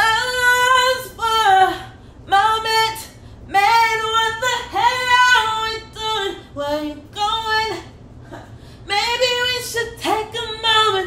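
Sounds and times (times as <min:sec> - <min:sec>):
woman singing wordless melody: 0:00.0 - 0:07.9, 0:08.8 - 0:11.0.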